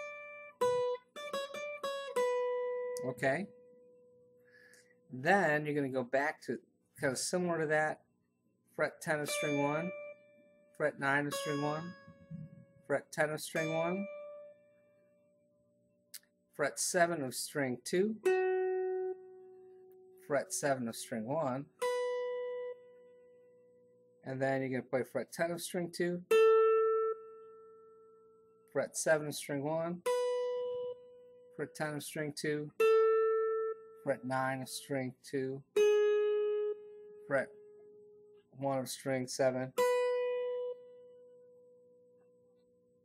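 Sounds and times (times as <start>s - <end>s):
electric guitar plucked note: 9.2s - 10.2s, 11.1s - 12.8s.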